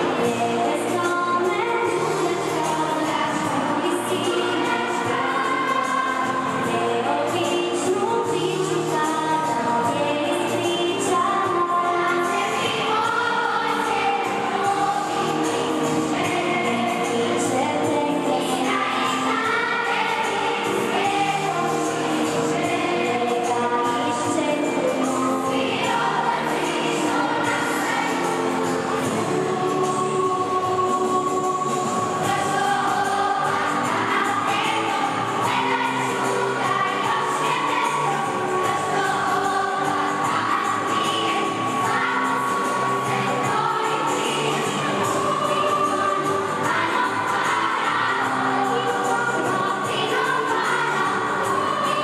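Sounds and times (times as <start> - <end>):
children's choir singing: 0.0 - 52.0.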